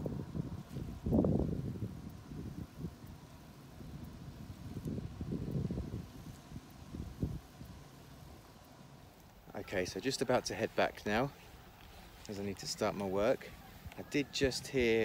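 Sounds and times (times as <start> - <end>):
grass rustling: 0.0 - 15.0
wind gusting against microphone: 0.0 - 15.0.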